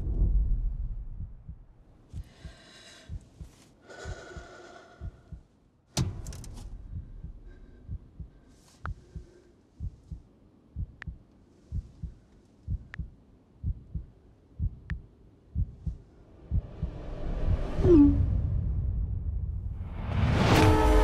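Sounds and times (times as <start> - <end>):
slow heartbeat: 0.0 - 19.8
rising whoosh: 16.3 - 20.6.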